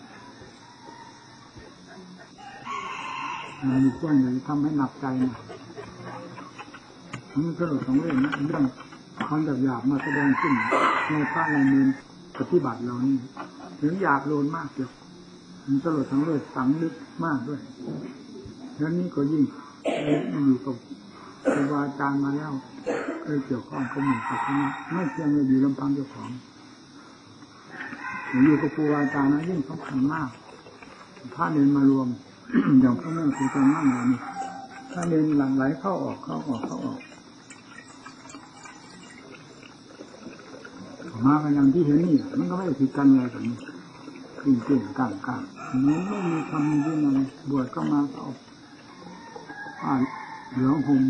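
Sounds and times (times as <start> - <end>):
rooster crowing: 0.0 - 12.2, 23.7 - 26.3, 27.7 - 31.8, 32.9 - 51.0
tape hiss: 0.0 - 50.4.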